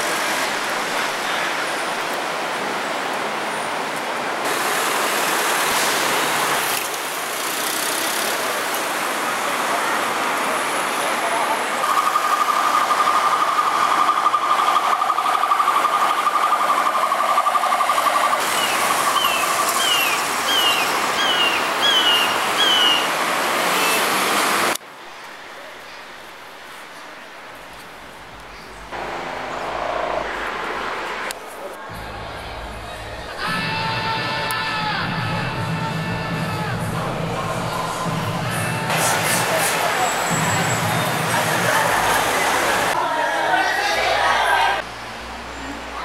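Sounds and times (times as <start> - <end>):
city traffic noise: 0.0 - 46.0
steady high tone: 11.8 - 20.2.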